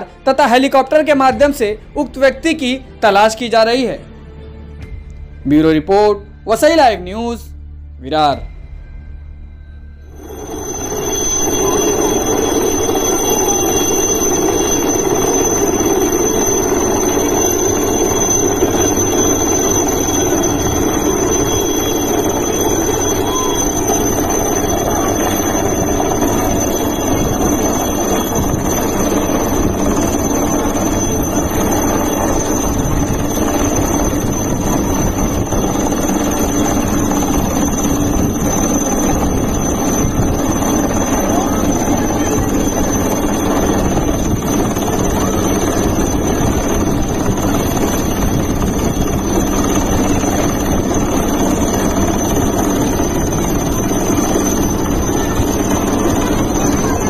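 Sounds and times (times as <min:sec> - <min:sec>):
helicopter rotor rush: 0:00.0 - 0:04.0, 0:10.0 - 0:57.0
high-pitched turbine whine: 0:04.8 - 0:57.0.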